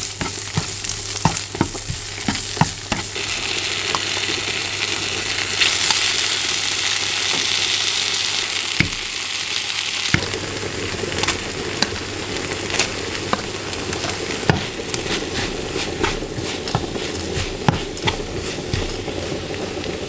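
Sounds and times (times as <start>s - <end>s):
spatula scraping a pan: 0.0s - 3.2s, 13.2s - 19.5s
meat sizzling in a frying pan: 0.0s - 20.0s.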